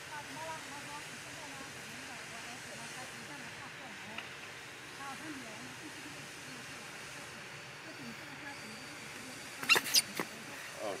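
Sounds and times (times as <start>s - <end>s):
baby monkey squeaking: 9.6s - 10.2s.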